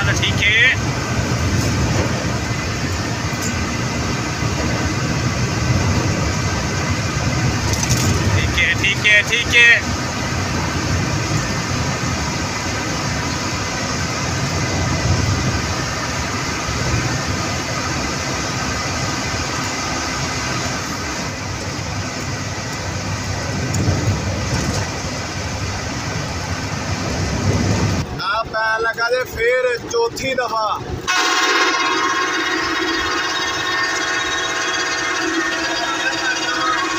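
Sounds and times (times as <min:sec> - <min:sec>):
bus engine and road drone: 0:00.0 - 0:36.9.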